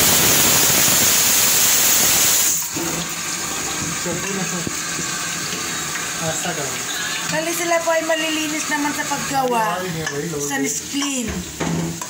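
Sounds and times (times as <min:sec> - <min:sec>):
fritters sizzling in hot oil: 0:00.0 - 0:02.8, 0:03.8 - 0:12.0.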